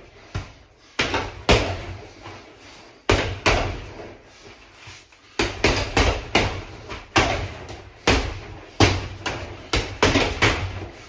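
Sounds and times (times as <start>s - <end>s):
gloves punching heavy bag: 0.2s - 2.1s, 3.1s - 4.2s, 5.4s - 11.0s.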